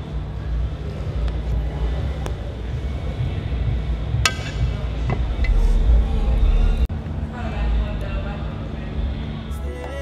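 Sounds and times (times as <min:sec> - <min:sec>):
low rumble: 0:00.2 - 0:09.5.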